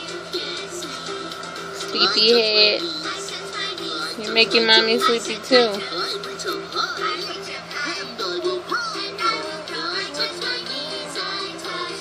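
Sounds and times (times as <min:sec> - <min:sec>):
singing over musical backing: 0:03.0 - 0:12.0.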